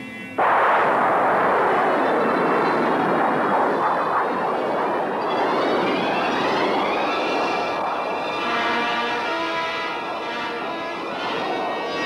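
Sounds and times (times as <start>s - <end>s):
rocket exhaust rushing: 0.4s - 12.0s
whine rising in pitch: 0.4s - 12.0s.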